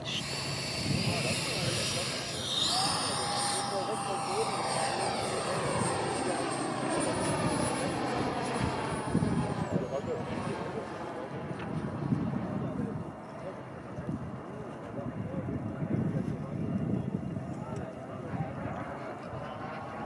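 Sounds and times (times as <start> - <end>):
electric ducted fan whine: 0.0 - 10.0.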